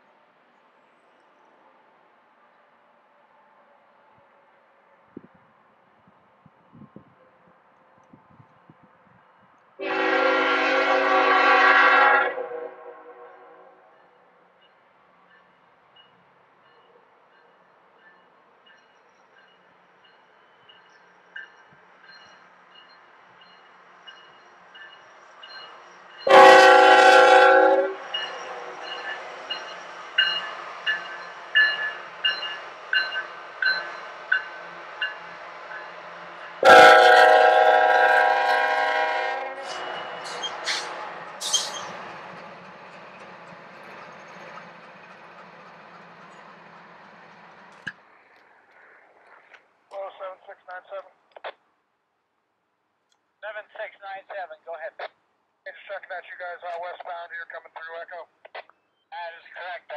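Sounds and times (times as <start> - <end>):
locomotive air horn blasts: 9.8 - 13.8, 26.2 - 28.8, 36.6 - 40.9
train wheels clicking on rails: 39.6 - 49.7.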